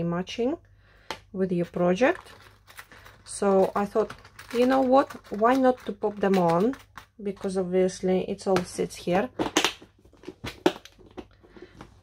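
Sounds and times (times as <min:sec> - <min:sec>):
plastic box knocks and clicks: 0:09.4 - 0:12.0.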